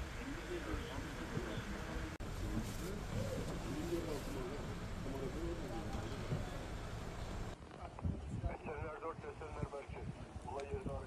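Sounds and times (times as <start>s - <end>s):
low steady street rumble: 0.0s - 11.0s.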